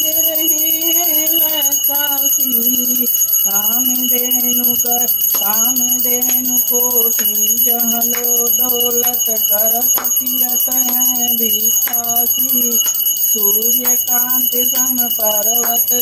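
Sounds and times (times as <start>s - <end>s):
brass hand bell ringing: 0.0s - 16.0s
woman singing devotional song: 0.0s - 16.0s.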